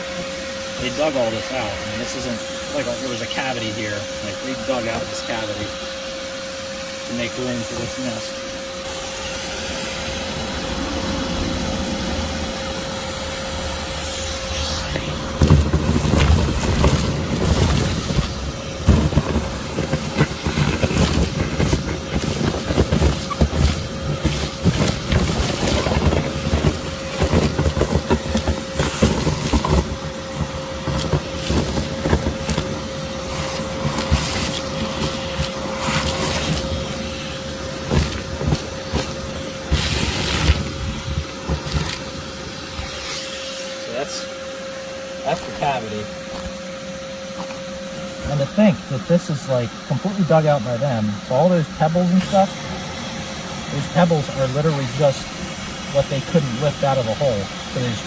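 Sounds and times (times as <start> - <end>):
vacuum whining: 0.0 - 58.0
debris rattling up a hose: 12.2 - 43.4.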